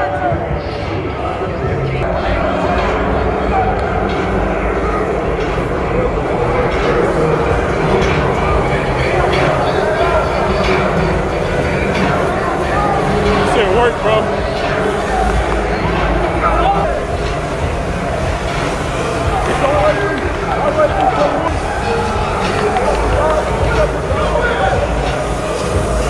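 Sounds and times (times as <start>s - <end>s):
indistinct voices: 0.0s - 26.0s.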